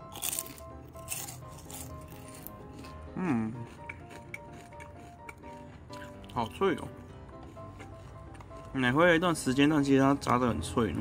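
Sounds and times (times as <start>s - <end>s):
crispy chicken skin crunching: 0.0s - 9.8s
quiet background music: 0.0s - 11.0s.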